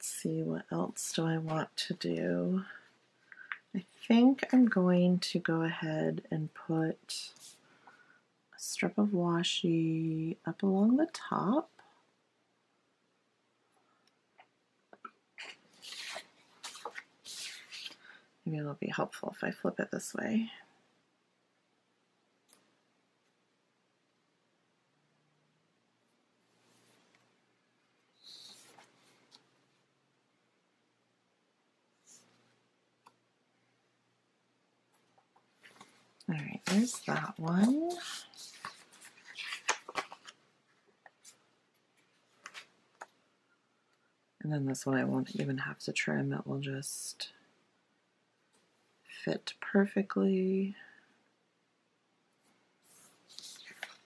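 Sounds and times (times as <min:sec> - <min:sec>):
paper rustling and sliding: 0:15.4 - 0:18.2, 0:35.6 - 0:40.4, 0:52.8 - 0:54.0.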